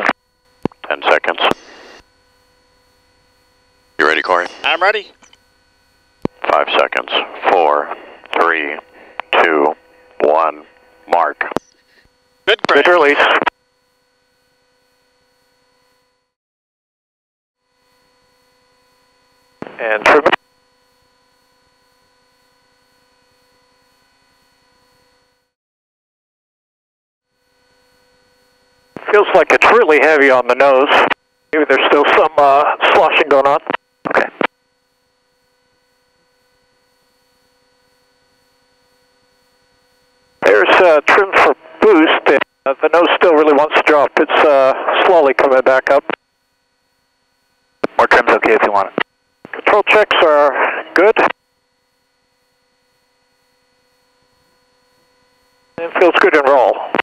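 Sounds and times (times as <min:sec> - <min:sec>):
faint buzzing radio hum: 0:00.0 - 0:16.3, 0:17.7 - 0:25.5, 0:27.4 - 0:57.0
faint steady electronic tone: 0:00.0 - 0:16.3, 0:17.7 - 0:25.5, 0:27.4 - 0:57.0
person speaking a word: 0:04.0 - 0:05.1.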